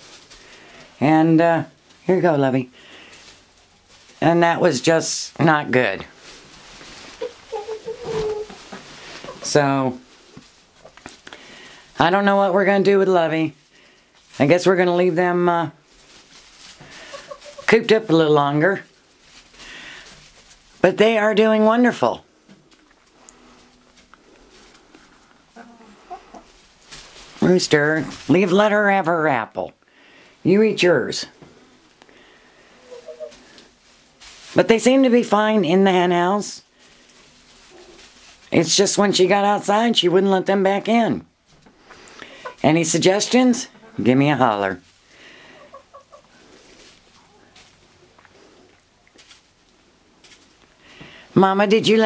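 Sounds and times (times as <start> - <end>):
birds pecking and scratching: 0.0 - 4.9, 5.7 - 21.5, 22.3 - 28.6, 31.4 - 39.4, 41.4 - 51.2
chickens clucking: 5.5 - 12.4, 16.4 - 18.6, 22.5 - 26.7, 32.6 - 33.8, 41.6 - 44.7, 45.4 - 49.2.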